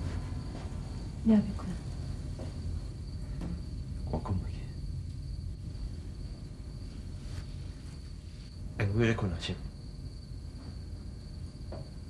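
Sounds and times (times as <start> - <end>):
crickets trilling: 0.0 - 12.0
low steady hum: 0.0 - 12.0.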